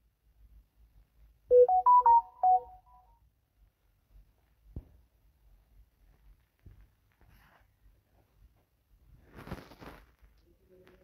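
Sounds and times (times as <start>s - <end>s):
phone notification chime: 1.5s - 2.8s.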